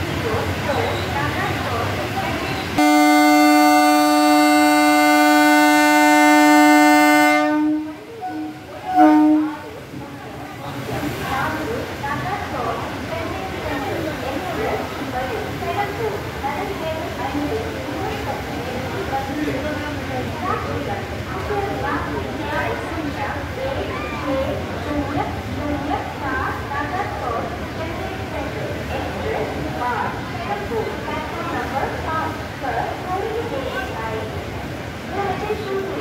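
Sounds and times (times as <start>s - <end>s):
crowd chatter: 0.0s - 36.0s
locomotive horn blasts: 2.8s - 9.7s.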